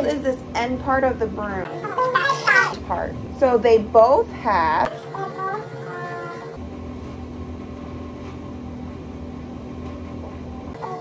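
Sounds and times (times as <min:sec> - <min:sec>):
woman speaking: 0:00.0 - 0:01.7, 0:02.7 - 0:05.0
low hum: 0:02.8 - 0:05.9, 0:06.5 - 0:10.8.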